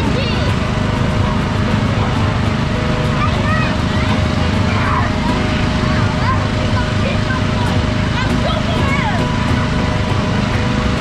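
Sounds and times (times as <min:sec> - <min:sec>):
blower fan rumbling: 0:00.0 - 0:11.0
children shouting: 0:00.0 - 0:11.0.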